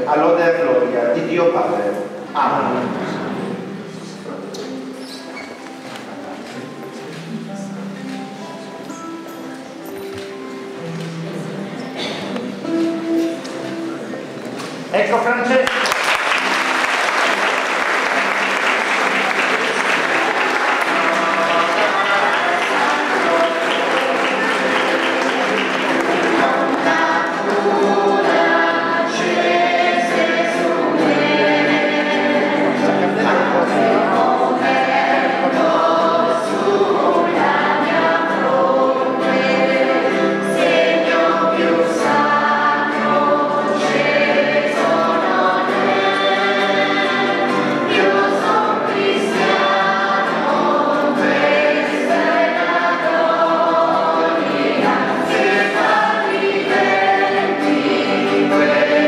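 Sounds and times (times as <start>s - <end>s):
congregation applause: 15.2s - 59.0s
choir singing: 16.0s - 59.0s.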